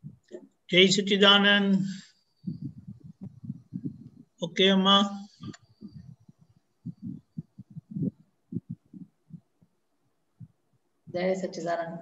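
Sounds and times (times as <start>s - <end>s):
soft low thumps: 0.0s - 0.4s, 2.4s - 11.3s.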